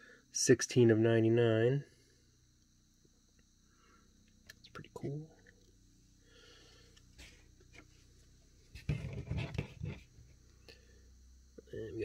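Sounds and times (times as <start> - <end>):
cards rustling and knocking: 8.7 - 10.3.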